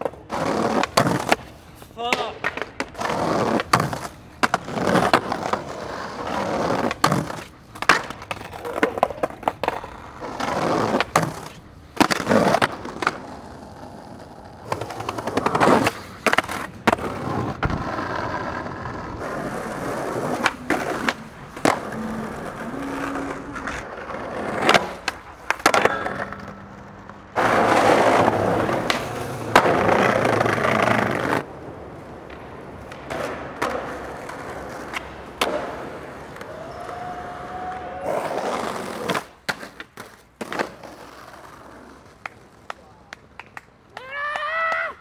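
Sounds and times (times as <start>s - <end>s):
skateboard clacking: 0.0s - 45.0s
skateboard wheels rolling on concrete: 0.0s - 45.0s.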